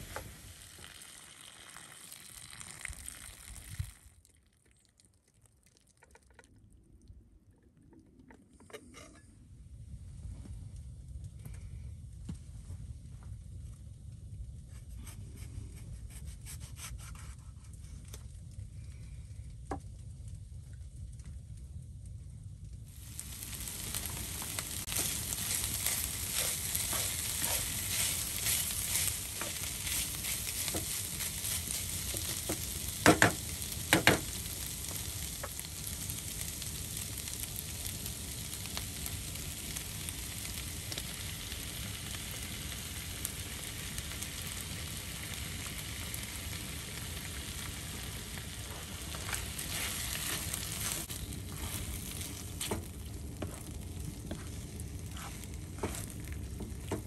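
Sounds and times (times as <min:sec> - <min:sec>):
food sizzling in a frying pan: 0:00.0 - 0:04.2, 0:22.9 - 0:57.0.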